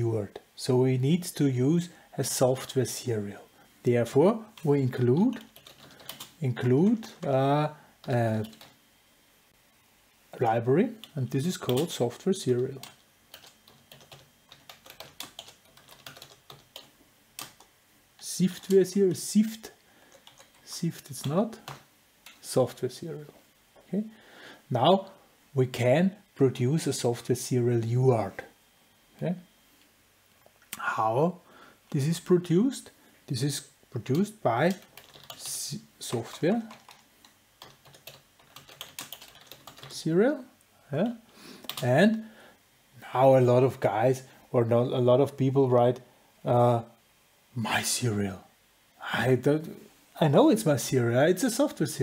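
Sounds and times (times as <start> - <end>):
typing on computer keyboard: 5.3 - 6.4, 8.0 - 8.8, 12.8 - 17.7, 20.1 - 20.6, 34.7 - 35.5, 36.2 - 40.0.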